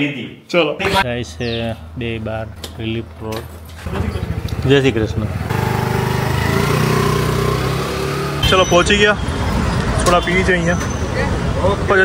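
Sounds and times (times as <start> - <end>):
motor scooter engine running: 3.8 - 8.2.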